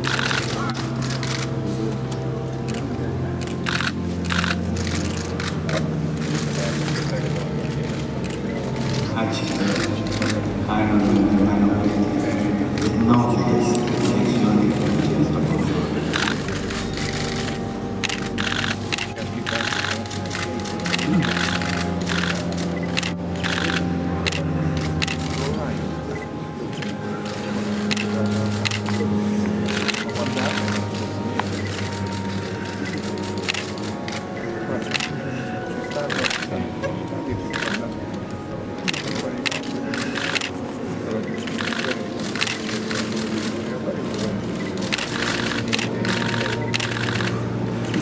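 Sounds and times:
camera shutters clicking: 0:00.0 - 0:10.4, 0:16.1 - 0:25.6, 0:26.8 - 0:34.3, 0:34.9 - 0:35.1, 0:36.0 - 0:36.5, 0:37.5 - 0:37.9, 0:38.9 - 0:40.6, 0:41.5 - 0:48.0
steady low hum: 0:00.0 - 0:48.0
sustained low tone: 0:04.5 - 0:42.2.

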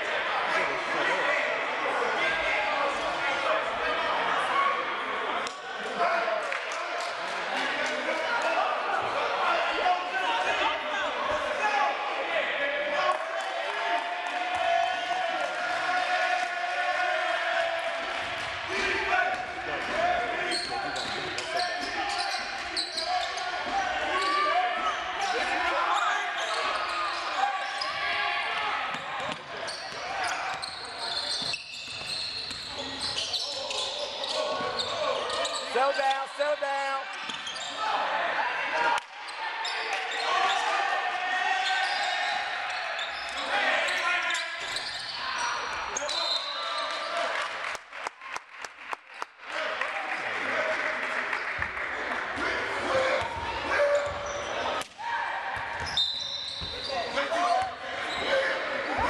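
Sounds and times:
voices calling and talking: 0:00.0 - 0:47.3, 0:52.1 - 0:59.0.

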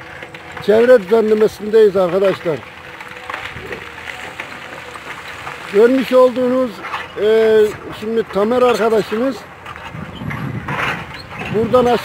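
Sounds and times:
excavator engine running: 0:00.0 - 0:12.0.

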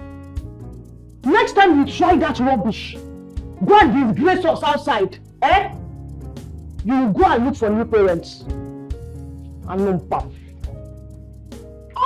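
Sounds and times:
film music of sustained chords: 0:00.0 - 0:12.0.

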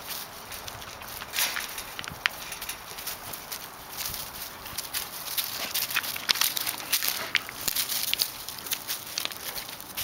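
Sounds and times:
paws stepping through dry leaves: 0:00.0 - 0:10.0.

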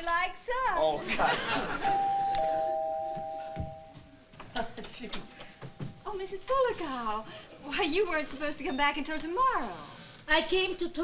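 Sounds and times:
two-note doorbell chime: 0:01.9 - 0:04.0.

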